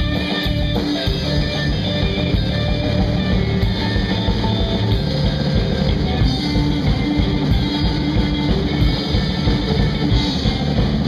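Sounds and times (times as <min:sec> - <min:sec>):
drum kit: 0:00.0 - 0:11.0
electric bass: 0:00.0 - 0:11.0
electric guitar: 0:00.0 - 0:11.0.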